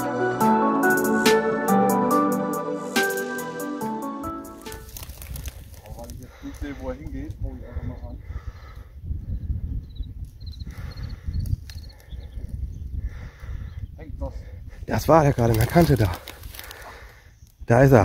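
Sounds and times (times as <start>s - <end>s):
music: 0.0s - 4.9s
wind rumble on microphone: 4.8s - 17.8s.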